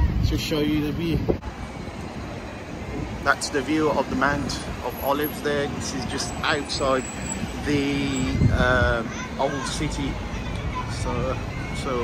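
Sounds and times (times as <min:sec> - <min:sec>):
road traffic: 0:00.0 - 0:12.0.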